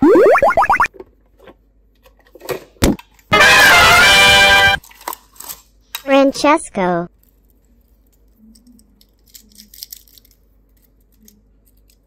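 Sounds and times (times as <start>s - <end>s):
cartoon spring glide: 0.0s - 0.9s.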